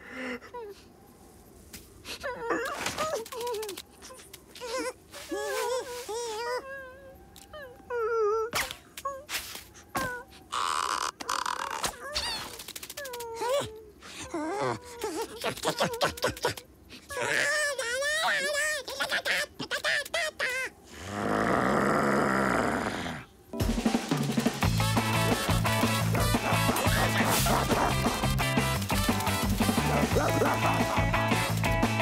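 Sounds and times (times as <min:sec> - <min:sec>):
cartoon sound-effect clicks: 0:11.2 - 0:13.5
buzzy strained vocal sound: 0:25.9 - 0:28.3.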